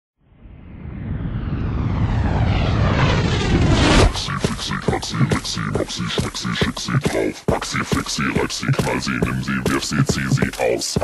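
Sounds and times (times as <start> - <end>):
electronic noise riser: 0.4 - 4.6
dance beat: 4.1 - 11.0.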